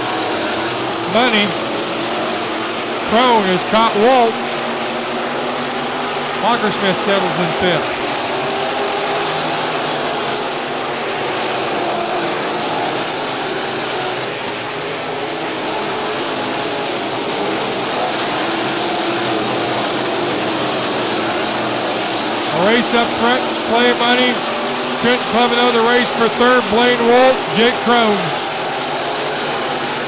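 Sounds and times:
race car engines droning: 0:00.0 - 0:30.0.

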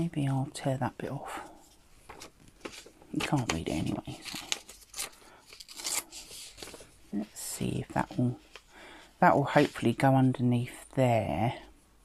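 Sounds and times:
paper rustling: 0:01.6 - 0:08.7, 0:09.3 - 0:10.0
paper tearing: 0:03.3 - 0:06.8.

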